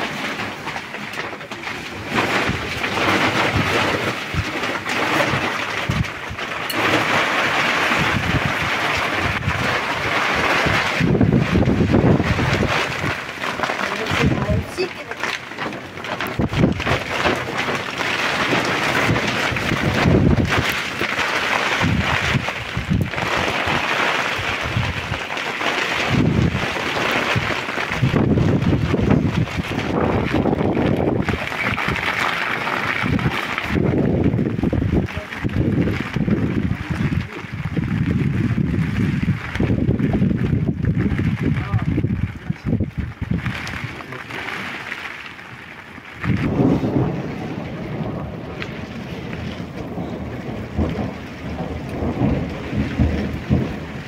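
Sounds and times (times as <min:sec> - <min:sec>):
steady rain hiss: 0:00.0 - 0:54.0
wind buffeting microphone: 0:01.7 - 0:45.0, 0:46.0 - 0:54.0.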